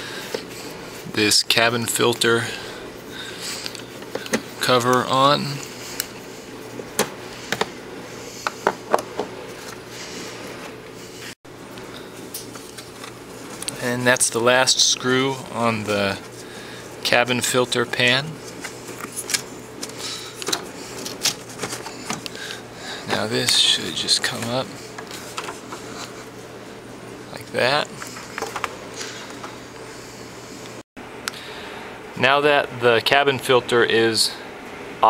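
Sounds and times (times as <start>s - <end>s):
faint steady hum: 0.0s - 35.0s.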